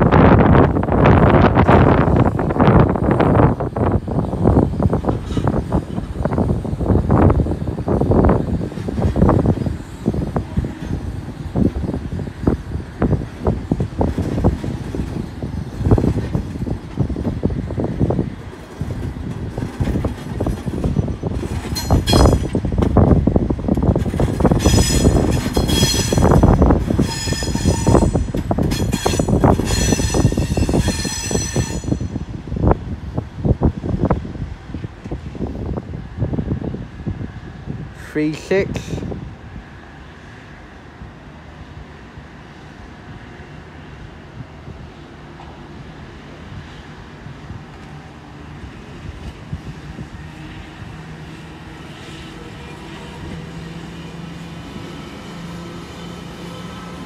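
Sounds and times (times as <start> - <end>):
train wheels clattering on rail joints: 3.4 - 32.4
train wheels squealing: 20.8 - 22.6, 24.6 - 32.2.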